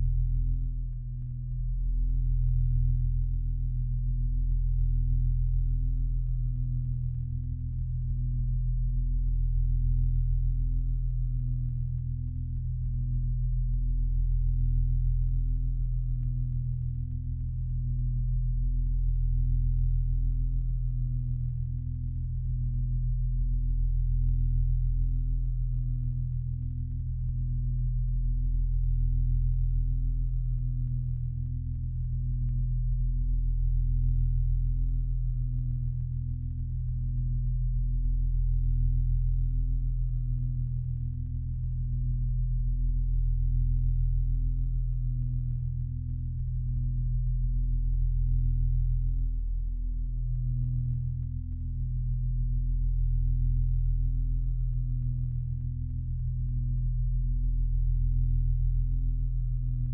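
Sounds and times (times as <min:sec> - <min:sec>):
low pulsing drone of pure tones: 0:00.0 - 0:59.9.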